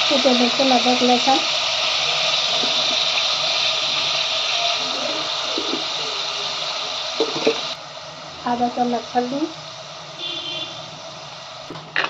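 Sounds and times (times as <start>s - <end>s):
meat sizzling in hot oil: 0.0s - 12.0s.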